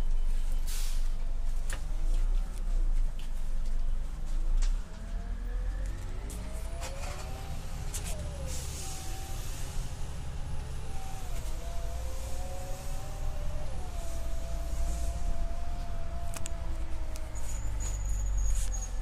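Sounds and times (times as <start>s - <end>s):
bus engine running: 0.0s - 19.0s.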